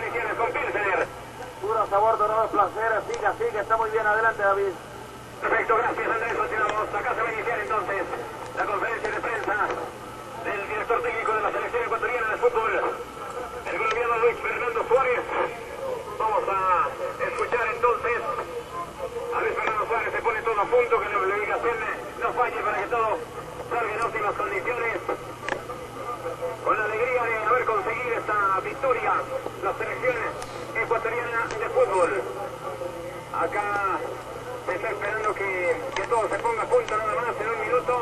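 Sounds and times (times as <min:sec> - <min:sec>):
speech over telephone line: 0:00.0 - 0:38.0.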